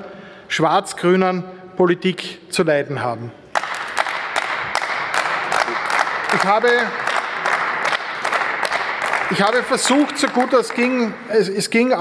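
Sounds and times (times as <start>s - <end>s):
group of people clapping: 3.5s - 12.0s.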